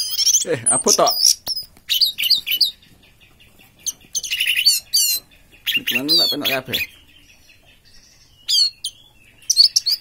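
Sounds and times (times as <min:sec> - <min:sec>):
thrush singing whistled notes: 0:03.8 - 0:10.0.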